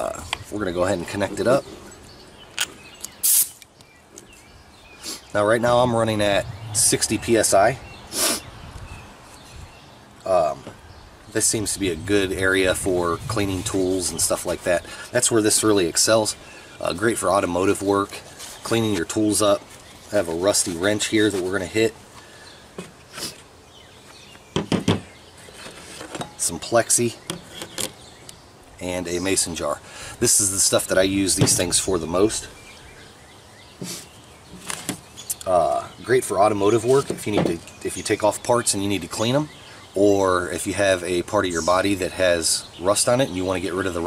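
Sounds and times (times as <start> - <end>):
compressed air hiss: 3.2 - 3.6, 5.0 - 5.4, 8.1 - 8.6, 33.8 - 34.2
soft rustle: 18.0 - 24.4.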